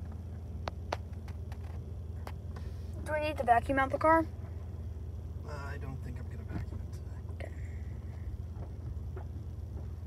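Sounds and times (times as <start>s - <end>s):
vehicle cabin rumble: 0.0s - 10.0s.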